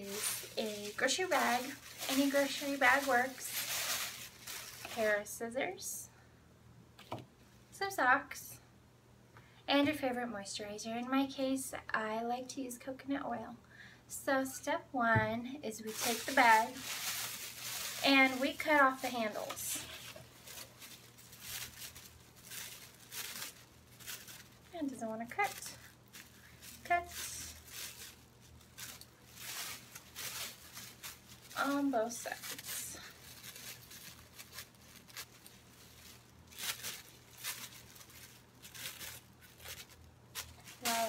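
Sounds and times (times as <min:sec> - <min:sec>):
plastic bag crinkling: 0:00.0 - 0:05.4, 0:15.8 - 0:41.0.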